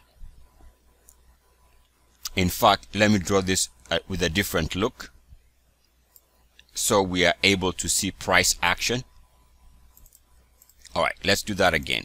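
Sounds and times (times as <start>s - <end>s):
man speaking: 2.2s - 5.2s, 6.7s - 9.2s, 10.8s - 12.0s.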